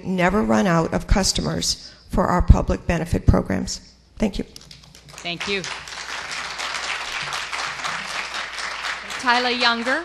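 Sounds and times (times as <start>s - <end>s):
audience applauding: 4.7s - 10.0s.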